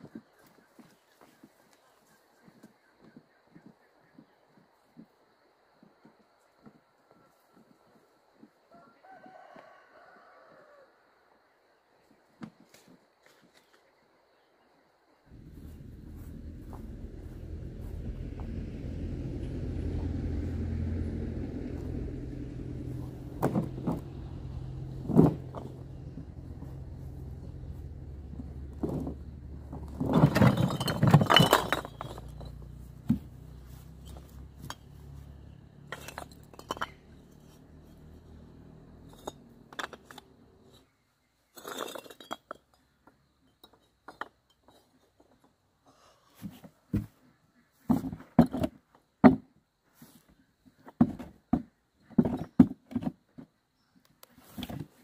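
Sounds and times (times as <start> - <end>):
steady low hum: 15.3 - 30.1
bricks clattering onto a pile: 28.7 - 33.2, 35.9 - 37.2, 41.5 - 43.0
bricks clinking and knocking: 29.8 - 33.2, 35.9 - 37.6, 39.1 - 40.4, 41.5 - 45.4.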